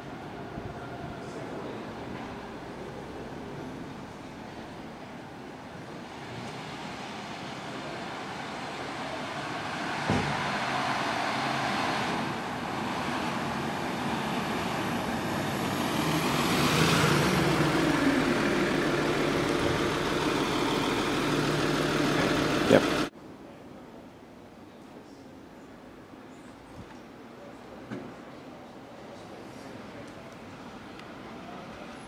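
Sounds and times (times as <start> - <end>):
car approaching: 0.0 - 23.1
sharp knock: 10.1 - 10.4.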